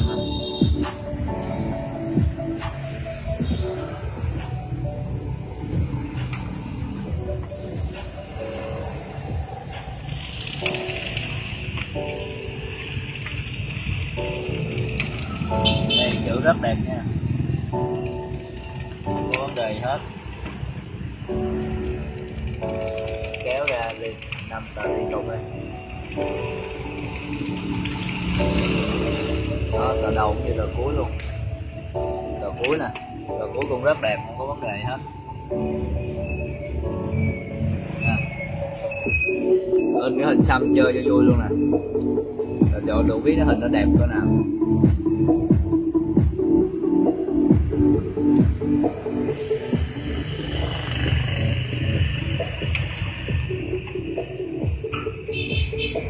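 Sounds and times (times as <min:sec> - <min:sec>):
music with singing voice: 0:00.0 - 0:12.6, 0:29.1 - 0:56.0.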